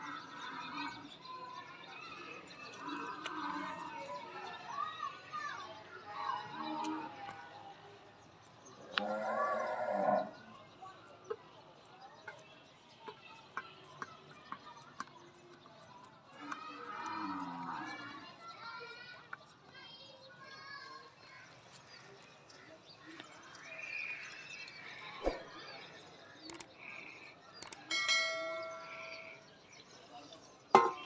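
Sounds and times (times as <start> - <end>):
faint outdoor background noise: 0.0 - 31.0
sharp click: 26.5 - 26.7, 27.6 - 27.9.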